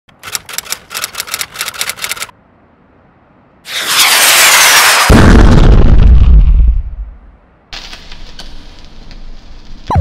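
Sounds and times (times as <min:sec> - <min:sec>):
typewriter keys clacking: 0:00.2 - 0:02.3.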